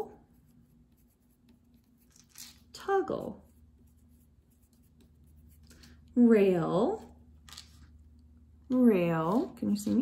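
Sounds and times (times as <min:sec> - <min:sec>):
pencil scratching on paper: 0:00.0 - 0:02.2, 0:02.8 - 0:06.0.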